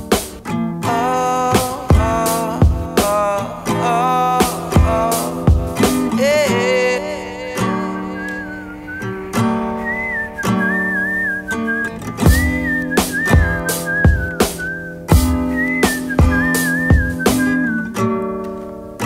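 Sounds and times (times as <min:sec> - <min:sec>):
acoustic guitar chords: 0:00.0 - 0:19.0
whistled melody: 0:07.6 - 0:18.1.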